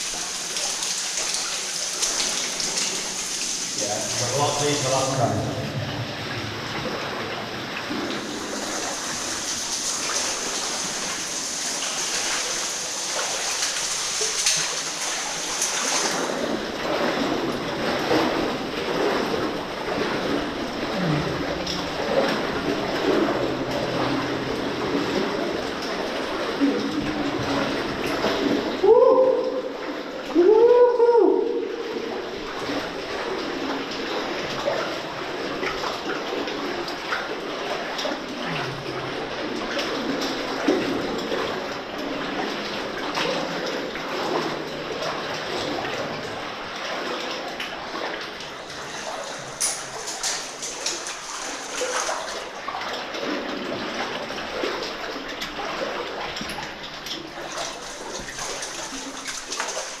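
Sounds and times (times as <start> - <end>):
wading through water splashing: 0.0 - 60.0.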